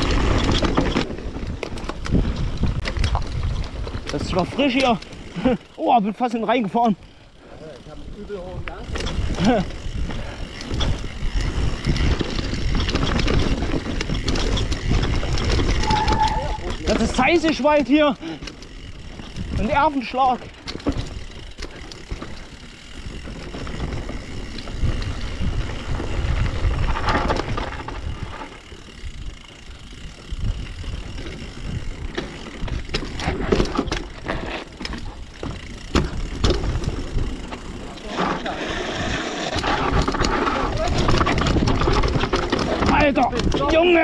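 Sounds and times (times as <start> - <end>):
bike chain and frame clattering: 0.0 - 44.0
bike tyres rolling on dirt: 0.0 - 44.0.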